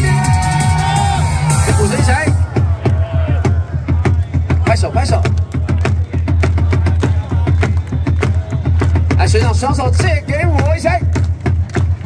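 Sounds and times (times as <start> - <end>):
cheer music over loudspeakers: 0.0 - 12.0.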